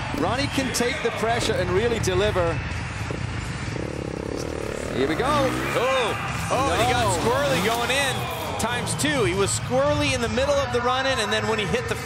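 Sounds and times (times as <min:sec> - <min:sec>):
motocross bike engine revving: 0:03.4 - 0:08.4.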